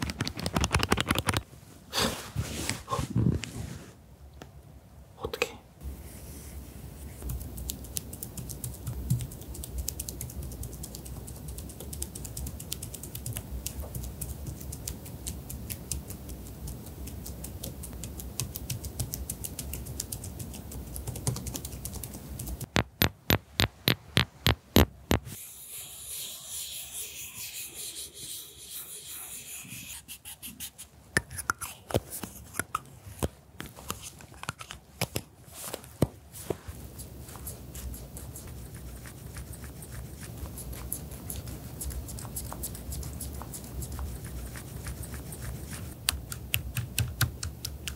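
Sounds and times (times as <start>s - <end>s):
soft hissing: 25.3s - 32.6s.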